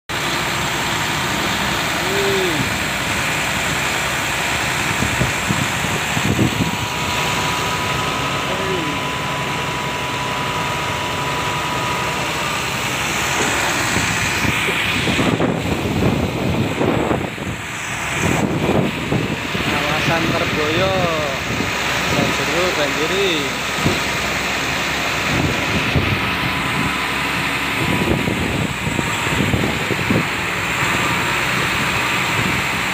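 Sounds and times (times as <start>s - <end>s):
continuous rushing noise: 0.1s - 32.9s
truck engine running: 0.1s - 32.9s.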